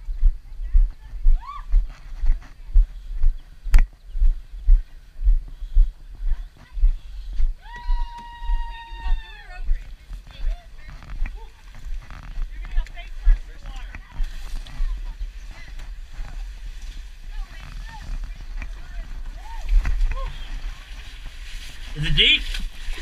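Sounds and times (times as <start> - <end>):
camera jostling rumble and knocks: 9.8 - 16.5.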